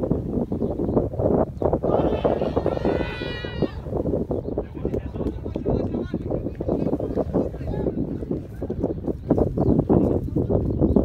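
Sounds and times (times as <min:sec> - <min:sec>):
distant chatter: 0:01.7 - 0:11.0
high-pitched shout: 0:01.9 - 0:03.9.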